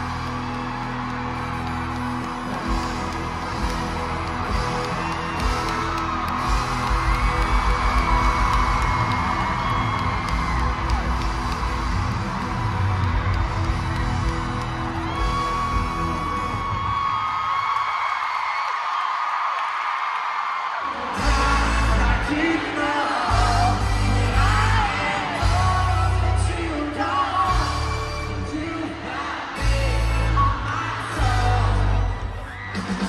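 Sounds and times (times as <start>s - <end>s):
live pop band over pa: 0.0s - 18.9s, 19.7s - 33.0s
crowd screaming and whooping: 0.0s - 33.0s.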